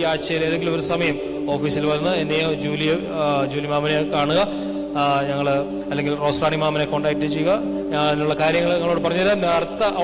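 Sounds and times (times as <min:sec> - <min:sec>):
held musical chord: 0:00.0 - 0:10.0
man speaking in chant-like delivery: 0:00.0 - 0:10.0.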